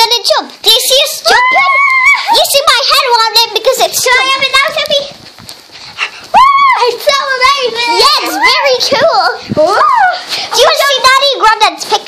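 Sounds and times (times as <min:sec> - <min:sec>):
child squealing: 0:01.3 - 0:02.4, 0:06.3 - 0:07.0.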